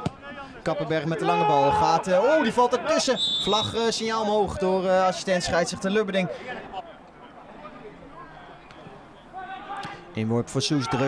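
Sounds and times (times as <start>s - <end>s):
faint voices of players: 0.0s - 11.0s.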